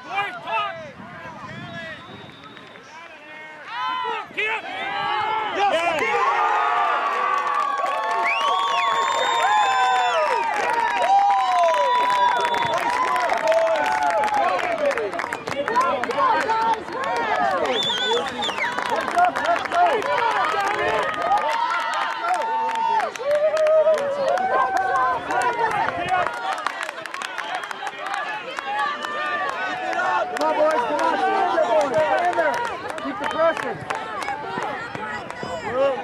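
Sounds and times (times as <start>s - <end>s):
spectators talking and calling out: 12.0s - 36.0s.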